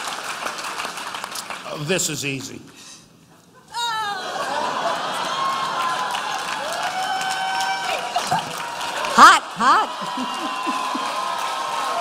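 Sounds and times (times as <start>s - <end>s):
audience applauding: 0.0s - 2.1s, 4.4s - 12.0s
crowd cheering: 3.7s - 12.0s.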